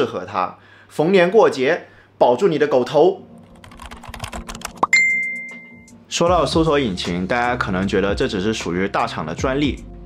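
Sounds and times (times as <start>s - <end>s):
keyboard typing clicks: 3.4s - 5.6s
bright ding: 4.9s - 5.9s.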